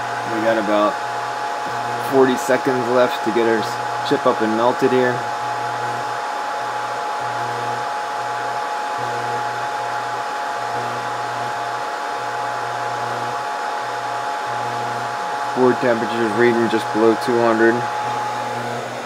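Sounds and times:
hot-air heater blowing: 0.0s - 19.0s
low hum: 12.4s - 19.0s.

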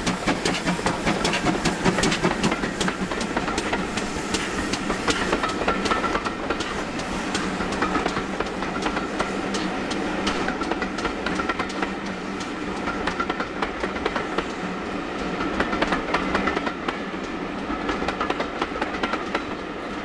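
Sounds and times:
train rumble: 0.0s - 20.0s
train wheels clattering on rails: 0.0s - 20.0s.

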